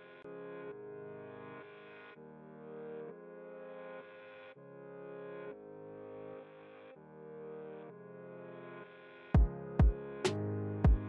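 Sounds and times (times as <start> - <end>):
quiet background music chords: 0.0 - 11.0.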